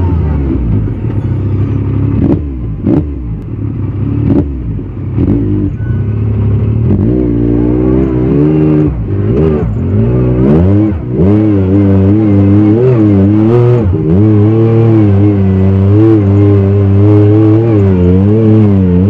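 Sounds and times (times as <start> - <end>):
engine revving: 0.0 - 19.0.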